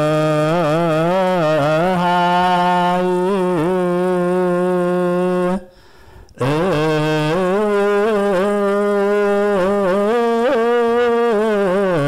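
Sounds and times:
man chanting a long note: 0.0s - 5.7s, 6.4s - 12.0s.

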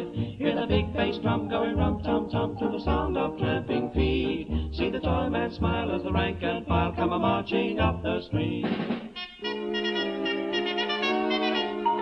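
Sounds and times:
dance orchestra playing: 5.6s - 12.0s.

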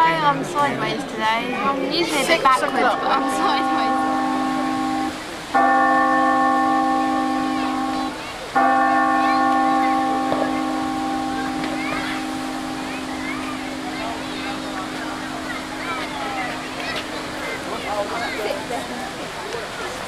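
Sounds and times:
bell-like chime chords: 2.6s - 18.8s.

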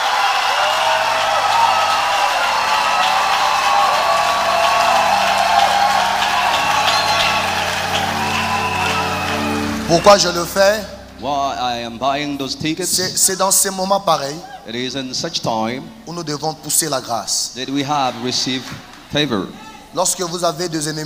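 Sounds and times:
people clapping: 0.0s - 11.2s, 18.0s - 19.1s
crowd cheering: 0.0s - 13.4s, 17.6s - 19.9s
keyboard chords: 0.0s - 14.1s.

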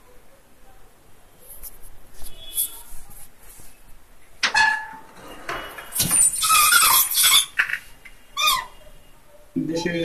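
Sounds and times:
short squeak: 5.9s - 7.7s.

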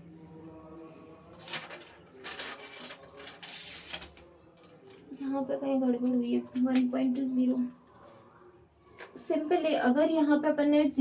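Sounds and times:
rustling and handling noises: 1.4s - 5.1s.

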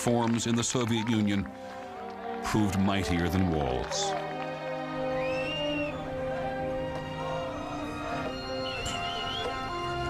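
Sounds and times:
music of sustained held tones: 0.7s - 10.0s.

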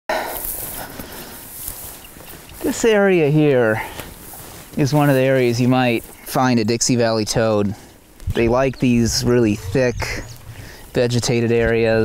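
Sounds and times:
footsteps crunching through dry grass: 0.2s - 12.0s
rustling: 0.3s - 12.0s.

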